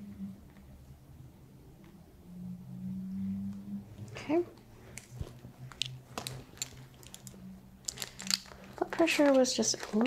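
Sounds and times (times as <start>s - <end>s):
faint low hum: 0.0s - 10.0s
blood pressure cuff clicks and crinkling: 4.9s - 10.0s.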